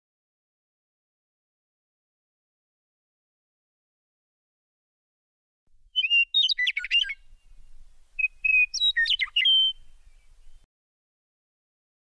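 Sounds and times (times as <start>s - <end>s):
bird chirping: 5.9s - 10.7s.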